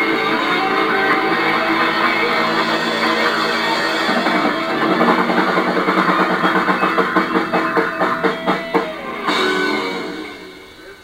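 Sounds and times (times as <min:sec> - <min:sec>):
drum kit beat: 0:00.0 - 0:11.0
electric guitars: 0:00.0 - 0:11.0.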